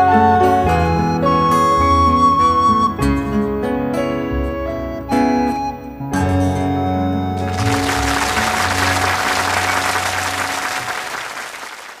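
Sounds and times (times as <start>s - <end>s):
audience applauding: 7.4s - 12.0s.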